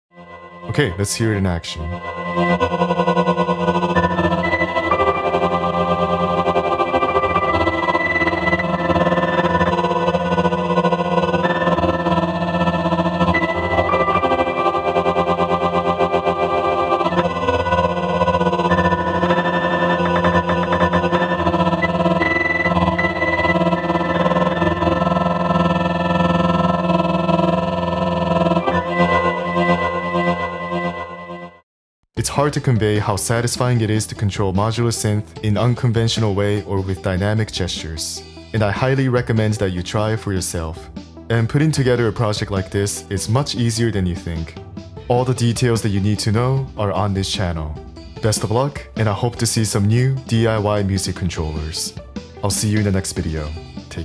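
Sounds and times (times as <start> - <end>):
synthesizer drone: 0.2 - 31.6.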